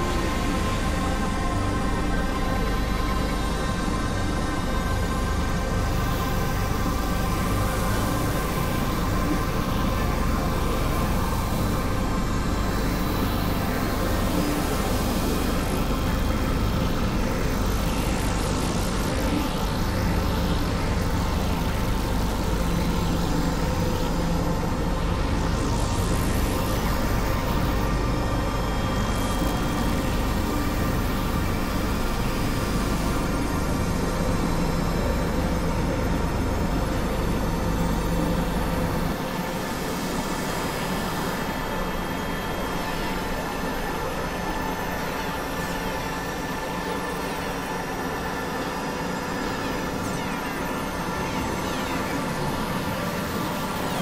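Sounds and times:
layered electronic drones: 0.0s - 54.0s.

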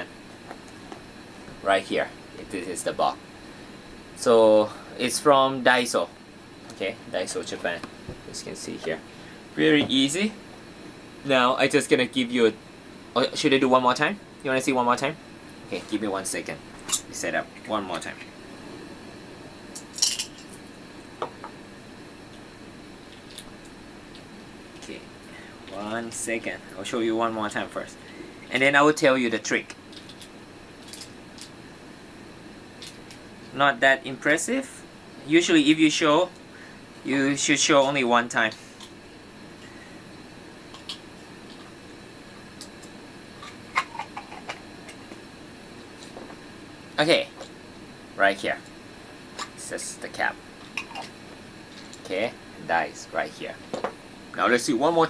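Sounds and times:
low room hum: 0.0s - 55.0s.

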